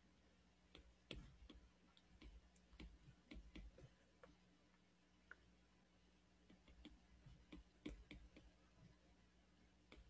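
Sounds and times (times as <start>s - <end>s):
stylus tapping on glass screen: 0.8s - 3.8s, 6.5s - 8.6s.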